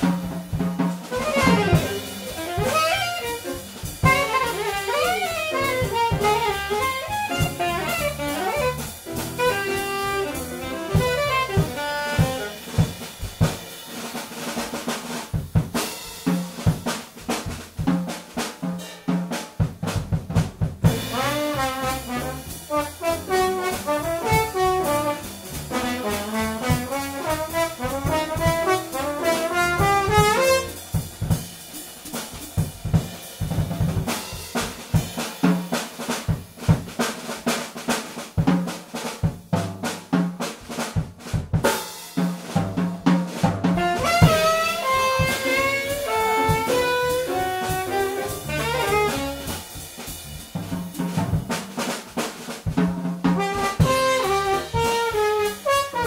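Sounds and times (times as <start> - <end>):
drum kit solo: 0.0 - 56.0
trombone with sliding notes: 1.1 - 12.8, 20.8 - 31.0, 43.8 - 49.8, 53.4 - 56.0.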